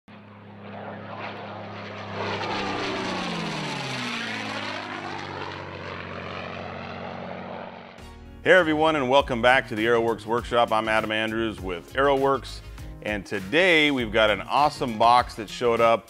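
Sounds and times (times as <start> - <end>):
propeller airplane flying past: 0.1 - 8.1.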